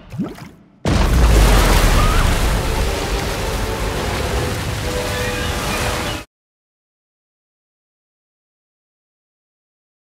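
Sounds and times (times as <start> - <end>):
water rushing and splashing: 0.0 - 6.3.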